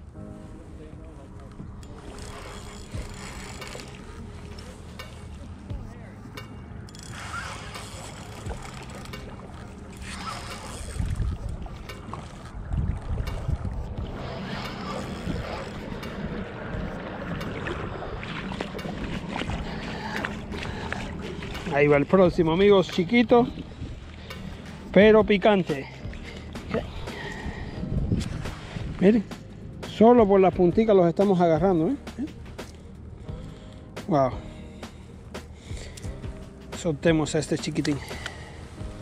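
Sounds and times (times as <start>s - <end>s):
shallow water: 0.0s - 39.0s
fishing reel cranking: 1.8s - 5.4s, 6.9s - 12.6s, 14.2s - 16.3s
wind on microphone: 10.0s - 22.6s, 26.0s - 29.8s.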